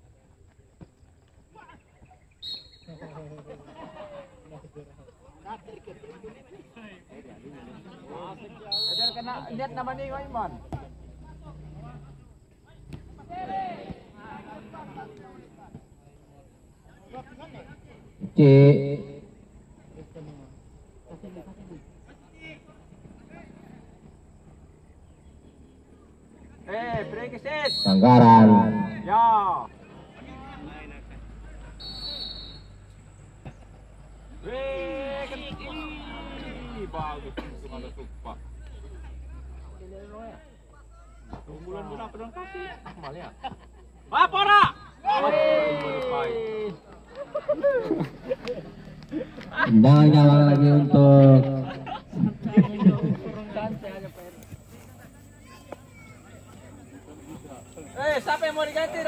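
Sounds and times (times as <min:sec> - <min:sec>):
referee whistle blast: 0:02.4 - 0:02.9, 0:08.7 - 0:09.4, 0:27.6 - 0:29.1, 0:31.8 - 0:32.8
men shouting: 0:34.4 - 0:37.2, 0:44.1 - 0:46.8.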